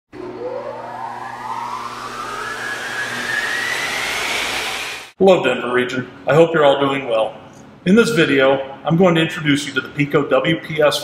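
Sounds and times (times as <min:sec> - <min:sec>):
mechanical whine rising in pitch: 0:00.1 - 0:05.2.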